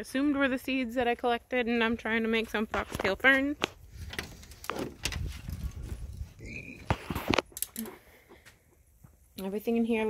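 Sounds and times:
rustling handling noise: 2.6s - 9.3s.

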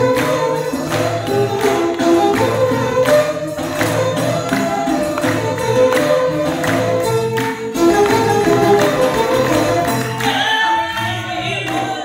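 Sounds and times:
lutes and fiddle accompaniment: 0.0s - 12.0s.

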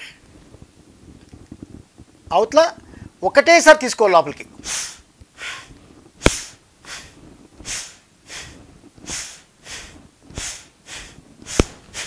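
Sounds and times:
man breathing forcefully through nose: 4.6s - 12.0s
sharp click: 11.5s - 11.8s.

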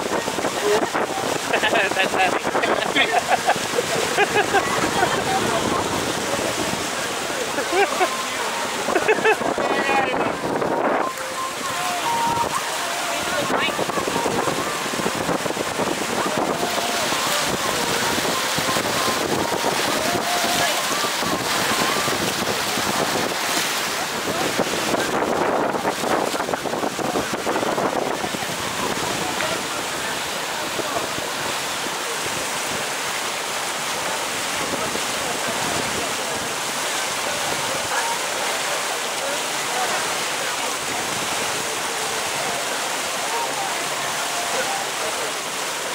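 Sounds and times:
wind on microphone: 0.0s - 38.1s
indistinct voices: 0.0s - 45.9s
water streaming past boat hull: 0.0s - 45.9s.

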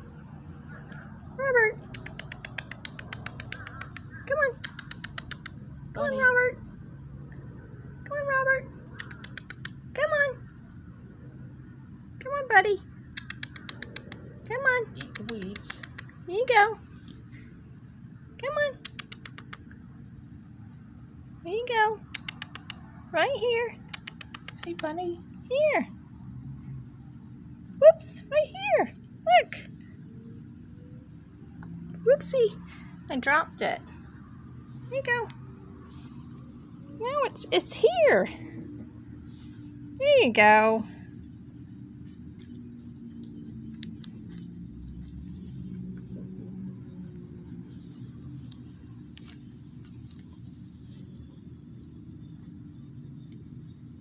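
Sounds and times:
high-pitched insect trill: 0.0s - 54.0s
faint clicks: 1.8s - 5.6s, 23.9s - 24.9s.

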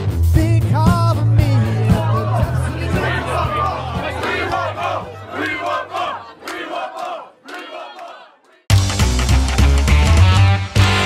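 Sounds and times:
loud guitar music: 0.0s - 4.5s, 8.7s - 11.0s
band bass notes: 0.0s - 5.1s, 8.7s - 11.0s
crowd cheering and shouting: 0.0s - 8.7s.

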